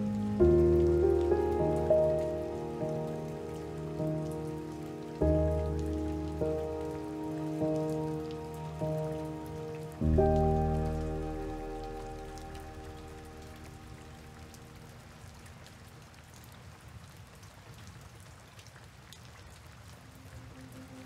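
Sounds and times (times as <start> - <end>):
soft piano music: 0.0 - 15.5
steady rain: 0.0 - 21.0.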